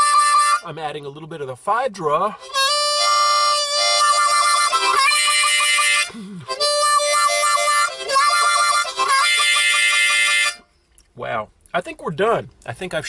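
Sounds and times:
harmonica wah-wah phrases: 0.0s - 1.2s, 2.0s - 10.6s.

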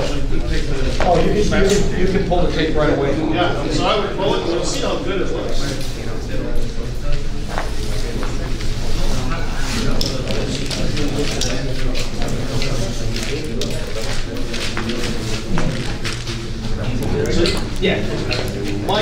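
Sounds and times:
men talking indistinctly: 0.0s - 19.0s.

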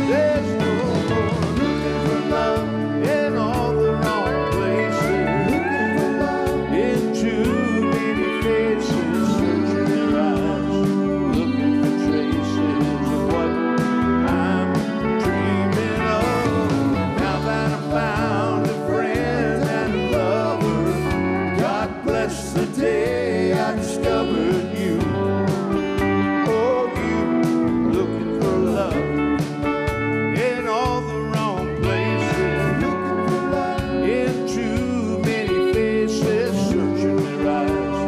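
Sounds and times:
drums: 0.0s - 38.0s
electric bass: 0.0s - 38.0s
man singing: 0.0s - 38.0s.

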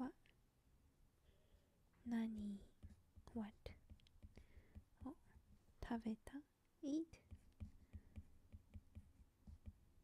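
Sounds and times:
woman whispering: 2.1s - 2.7s, 3.3s - 3.8s, 5.8s - 7.2s
stylus tapping on glass screen: 7.2s - 9.9s.

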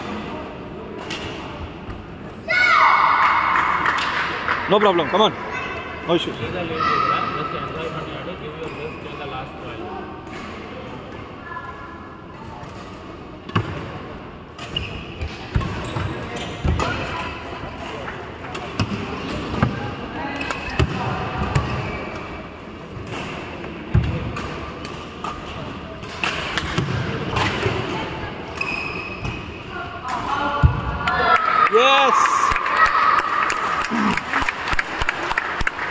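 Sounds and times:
murmur of voices: 0.0s - 35.9s.

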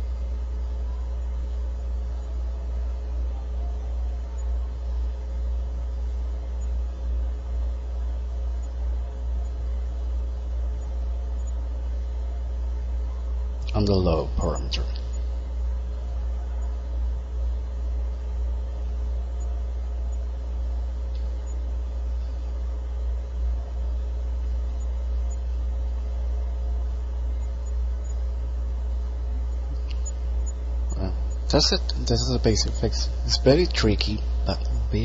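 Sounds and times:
low hum and rumble: 0.0s - 35.0s.

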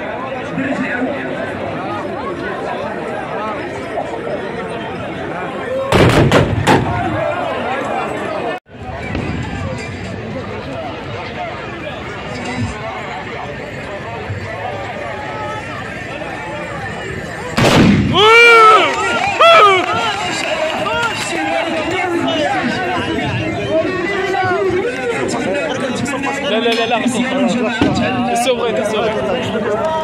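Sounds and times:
crowd chatter: 0.0s - 30.0s
musket shots: 6.0s - 7.0s, 17.6s - 18.2s
people shouting: 18.1s - 23.0s.

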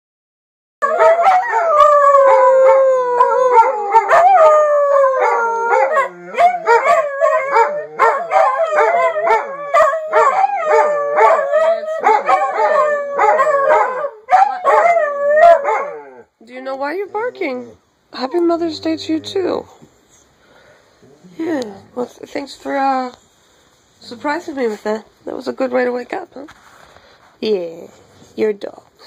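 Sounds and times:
dogs howling: 0.8s - 16.3s.

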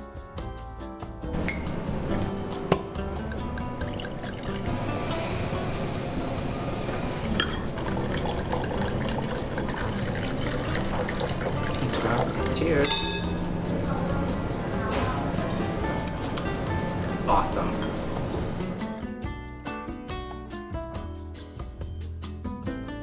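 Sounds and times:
background music: 0.0s - 23.0s
wine pouring into a glass: 3.1s - 5.4s, 6.8s - 13.3s.

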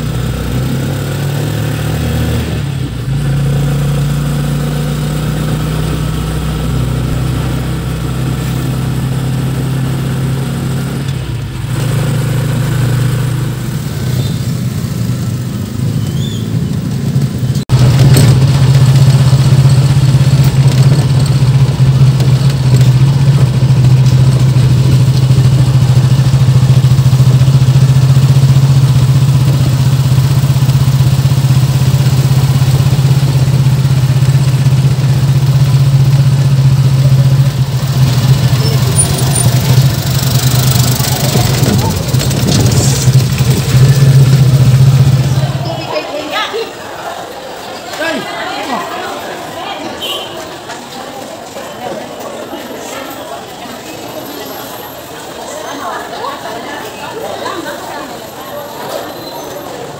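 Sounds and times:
vehicle engine drone from inside: 0.0s - 45.8s.

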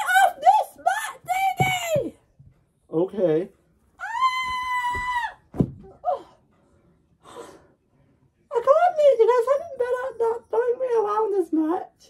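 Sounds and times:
thunk on the floor: 4.9s - 6.0s.

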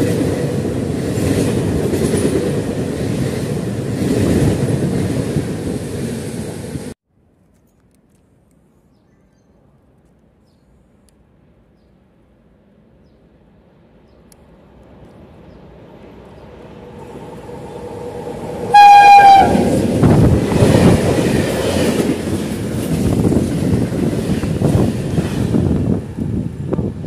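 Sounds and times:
freight train rumbling: 0.0s - 7.0s, 13.3s - 27.0s
train horn blast: 17.4s - 19.9s.

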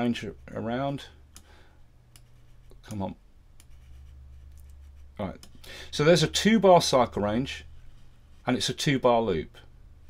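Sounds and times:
low steady hum: 0.0s - 10.0s
computer mouse clicks: 2.1s - 3.0s.

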